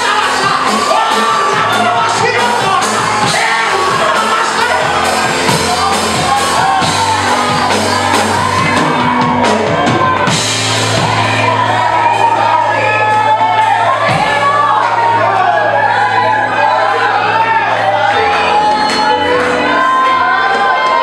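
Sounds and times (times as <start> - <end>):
man singing: 0.0 - 9.8
band playing worship music: 0.0 - 21.0.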